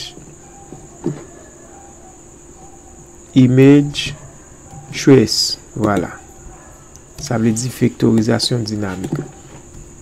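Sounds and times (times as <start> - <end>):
steady high-pitched whine: 0.0 - 10.0.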